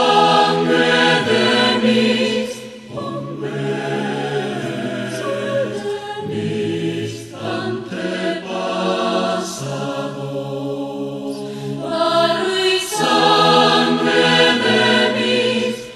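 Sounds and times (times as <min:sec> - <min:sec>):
mixed choir singing: 0:00.0 - 0:15.9.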